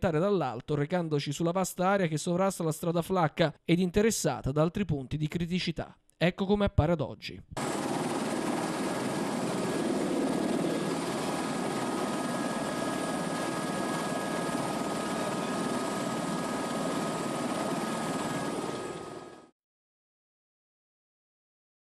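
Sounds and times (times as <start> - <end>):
faint steady whines: 7.6 - 19.4
helicopter rotor and engine noise: 7.6 - 19.5.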